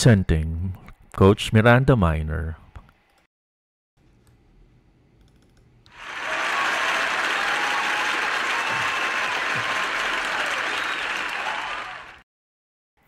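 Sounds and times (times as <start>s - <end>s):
crowd clapping: 5.9s - 12.2s.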